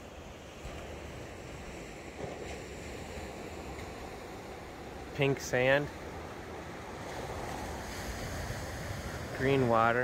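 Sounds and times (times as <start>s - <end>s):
wind on microphone: 6.2s - 10.0s
surf breaking on beach: 6.5s - 10.0s.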